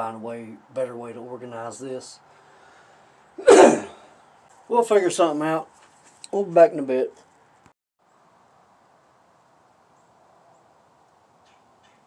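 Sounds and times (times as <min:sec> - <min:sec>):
man coughing: 0:03.4 - 0:04.0.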